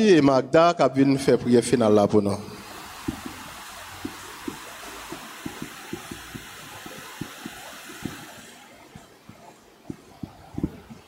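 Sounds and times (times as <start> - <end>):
microphone hiss: 0.0 - 11.0
microphone handling knocks: 9.3 - 11.0.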